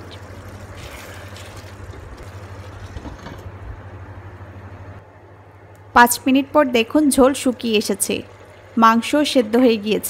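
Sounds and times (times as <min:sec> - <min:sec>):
induction cooktop electrical hum: 0:00.0 - 0:10.0.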